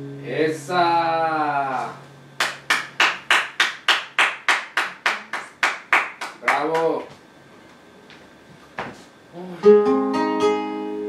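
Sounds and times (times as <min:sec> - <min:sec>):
hand clapping in steady beat: 0:02.4 - 0:07.2.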